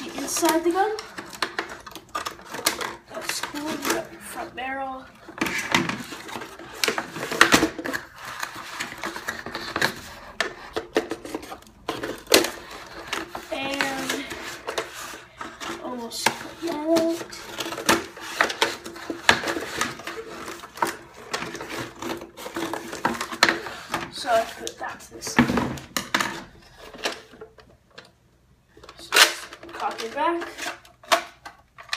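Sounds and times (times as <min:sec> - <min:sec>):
cardboard packaging rustling: 0:00.0 - 0:27.6.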